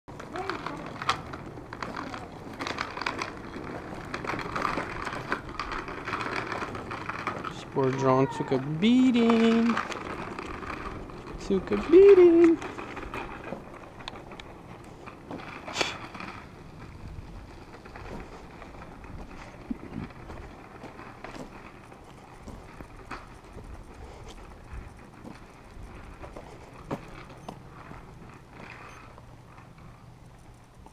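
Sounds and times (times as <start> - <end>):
steady low rumble: 0.1 - 7.8, 8.6 - 30.9
plastic wheels rattling on asphalt: 0.1 - 30.9.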